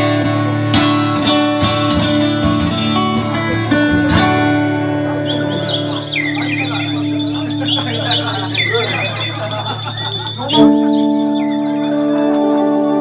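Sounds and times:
band chord ringing: 0:05.2 - 0:13.0
high bird-like chirps and whistles: 0:05.2 - 0:13.0.

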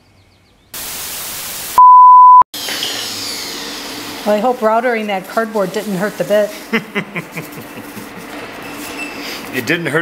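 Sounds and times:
static hiss burst: 0:00.8 - 0:01.8
steady single-pitch beep: 0:01.8 - 0:02.4.

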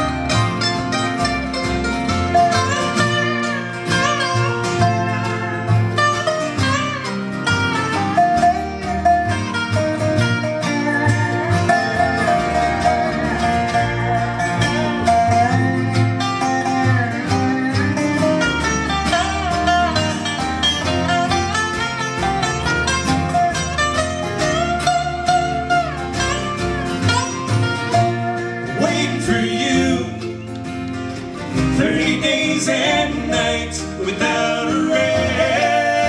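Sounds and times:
acoustic guitar: 0:00.0 - 0:36.0
mandolin: 0:00.0 - 0:36.0
sliding resonator guitar: 0:00.0 - 0:36.0
upright bass: 0:00.0 - 0:36.0.

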